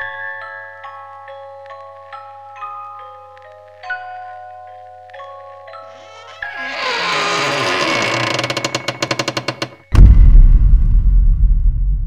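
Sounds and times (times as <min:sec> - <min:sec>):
deep rumbling boom: 0:09.9 - 0:12.0.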